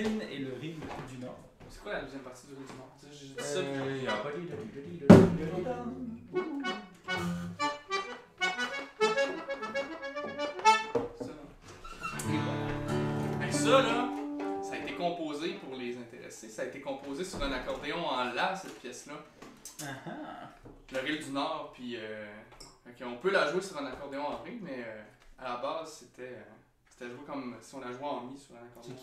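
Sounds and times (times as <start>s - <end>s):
sharp thunk: 5.1s - 5.5s
button accordion playing: 6.2s - 11.0s.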